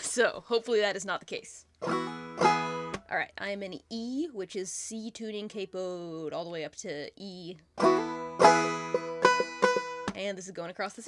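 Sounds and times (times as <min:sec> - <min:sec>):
banjo plucking and strumming: 0:01.8 - 0:03.0, 0:07.8 - 0:10.2.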